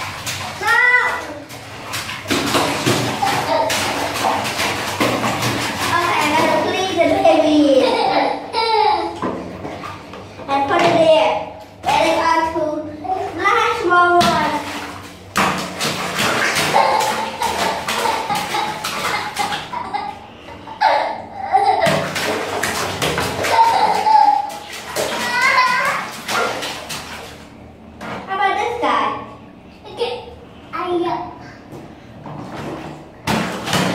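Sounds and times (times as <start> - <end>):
hands splashing water in basin: 0.0 - 7.2, 13.6 - 20.0, 21.8 - 28.2, 32.4 - 33.9
child talking: 0.6 - 1.5, 5.8 - 9.2, 10.4 - 14.8, 25.1 - 26.1, 28.3 - 31.6.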